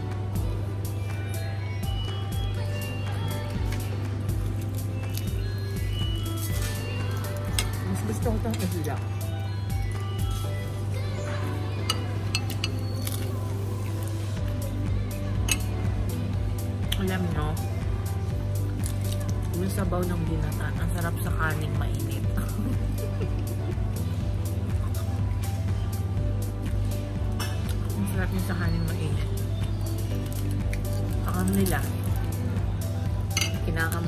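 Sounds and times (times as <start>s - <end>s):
background music: 0.0s - 34.0s.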